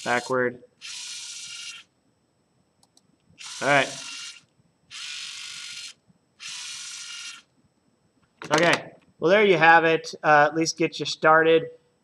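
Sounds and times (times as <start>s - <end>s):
motors whining: 0.0s - 1.9s, 3.4s - 7.5s.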